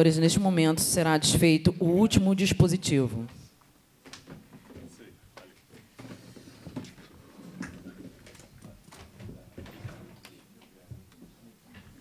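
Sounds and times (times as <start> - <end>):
faint murmur of voices: 7.8 - 12.0.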